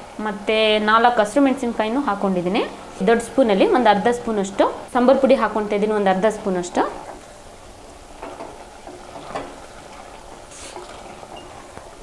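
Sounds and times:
frying sizzle: 0.0 - 12.0.

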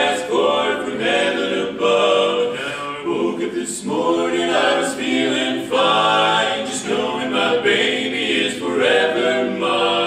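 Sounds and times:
male quartet singing a cappella: 0.0 - 10.0.

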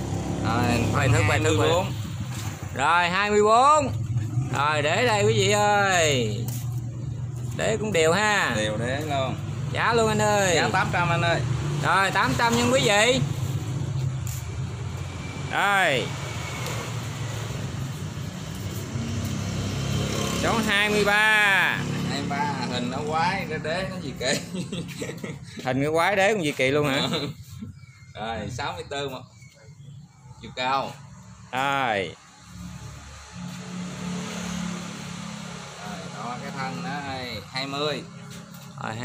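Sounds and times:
outdoor background noise: 0.0 - 39.0.

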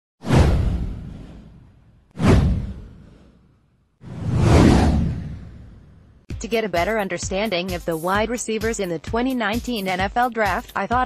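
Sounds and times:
whoosh: 0.2 - 6.3
deep low rumble: 4.0 - 6.3.

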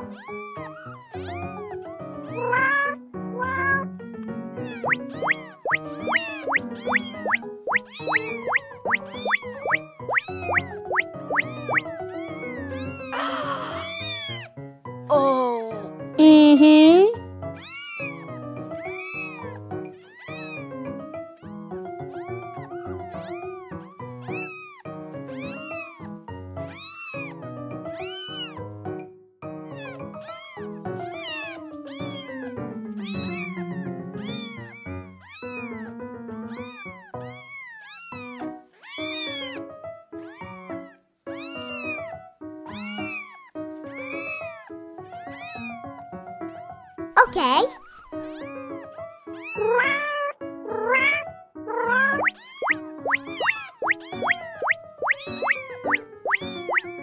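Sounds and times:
kitten mewing: 0.0 - 3.9, 4.6 - 14.5, 15.1 - 20.8, 22.1 - 26.1, 29.7 - 39.6, 40.2 - 42.1, 42.7 - 46.0, 47.2 - 57.0
light background music: 0.0 - 57.0.

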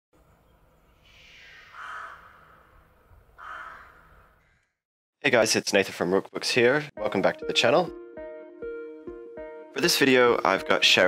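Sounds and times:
crow cawing: 1.0 - 4.8.

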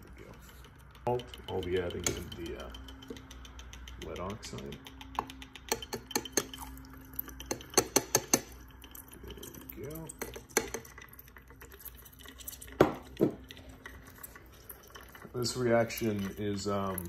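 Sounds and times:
faint hotplate hum: 0.0 - 17.0.

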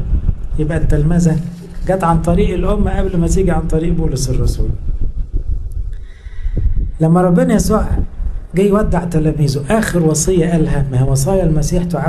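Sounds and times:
faint high whine: 0.0 - 5.0
low rumble of microphone handling: 0.0 - 12.0.

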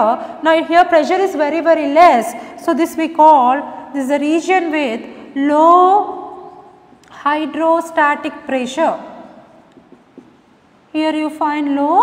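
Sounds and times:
marker scratching on whiteboard: 9.7 - 10.5.

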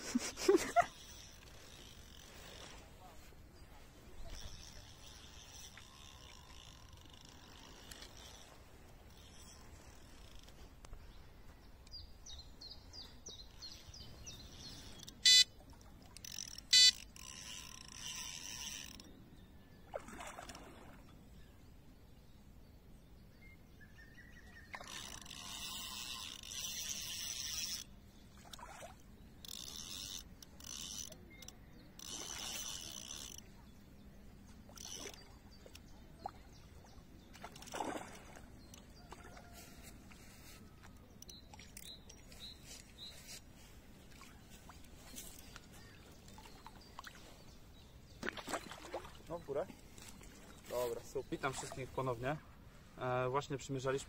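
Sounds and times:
fishing reel clutch ticking: 0.9 - 2.6, 4.2 - 10.5, 14.5 - 15.5, 16.2 - 19.1, 24.8 - 27.9, 29.4 - 33.4, 34.7 - 35.8
loud electronic beeps: 15.2 - 15.5, 16.7 - 17.0.

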